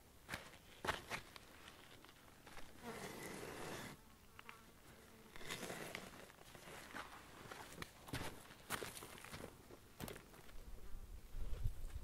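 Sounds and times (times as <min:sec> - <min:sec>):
footsteps on gravelly dirt: 0:00.3 - 0:03.3, 0:05.4 - 0:12.0
flying insect buzzing: 0:02.7 - 0:06.3.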